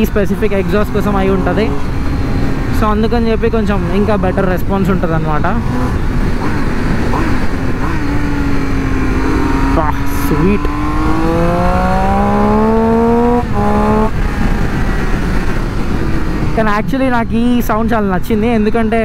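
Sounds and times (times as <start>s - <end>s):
motorcycle engine revving: 0.0s - 17.2s.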